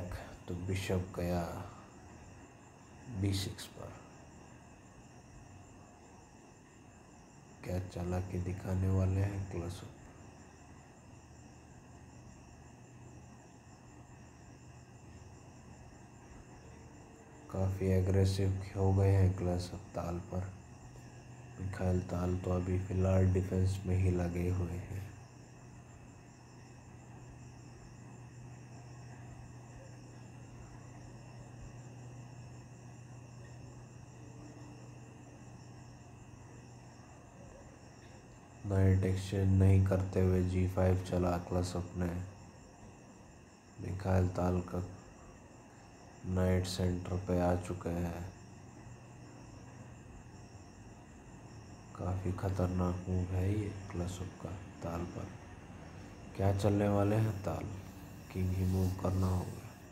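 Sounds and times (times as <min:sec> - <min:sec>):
insects chirring: 0:00.0 - 0:59.9
low steady hum: 0:00.0 - 0:59.9.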